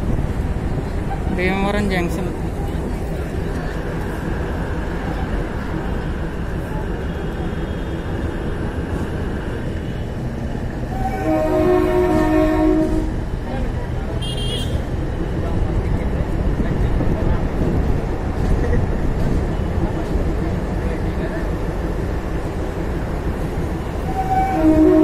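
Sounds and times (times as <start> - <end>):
train wheels rumbling on rail: 0.0 - 25.0
train horn: 10.9 - 13.2, 14.2 - 14.8, 24.1 - 25.0.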